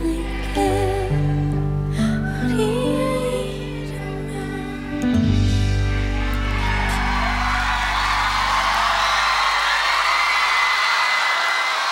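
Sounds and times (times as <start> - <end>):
audience cheering and screaming: 0.0 - 1.5, 5.4 - 11.9
pop ballad chord: 0.0 - 9.2.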